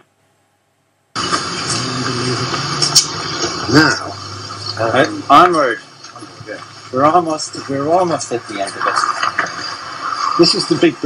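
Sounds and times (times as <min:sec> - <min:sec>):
low hum: 0:00.0 - 0:11.0
faint voices: 0:01.2 - 0:11.0.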